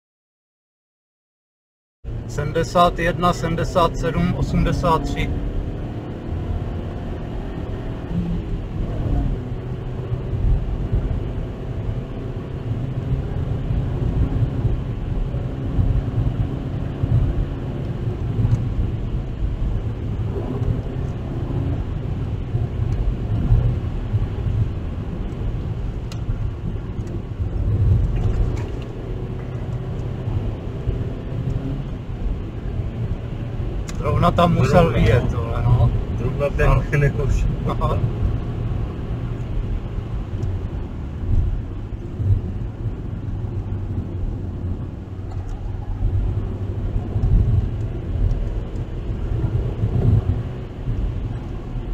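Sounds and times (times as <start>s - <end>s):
car engine and road rumble: 2.0s - 51.9s.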